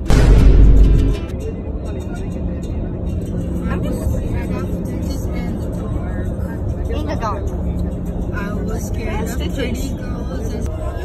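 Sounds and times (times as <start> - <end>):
song playing: 0.0 - 1.4.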